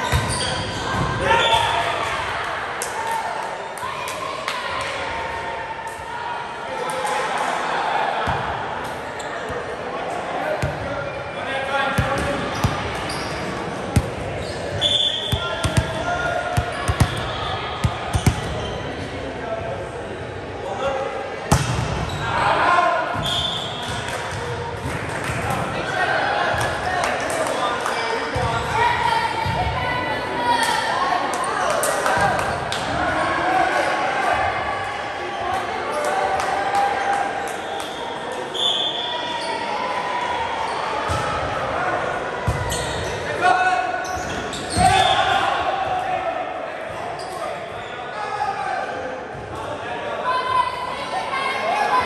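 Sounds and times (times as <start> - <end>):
voices echoing in hall: 0.0 - 52.0.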